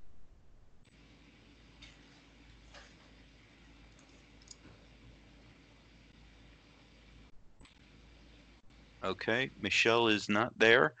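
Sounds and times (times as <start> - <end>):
steady low hum: 0.2 - 11.0
soft clicks: 3.9 - 4.7.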